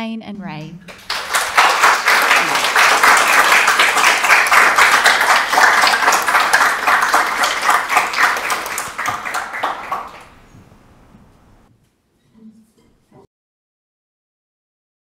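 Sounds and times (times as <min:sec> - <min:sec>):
audience applauding: 0:00.9 - 0:10.5.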